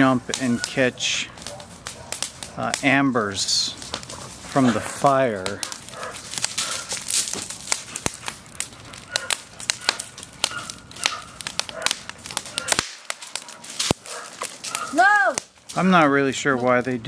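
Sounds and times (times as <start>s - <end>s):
wood fire crackling: 0.0s - 17.0s.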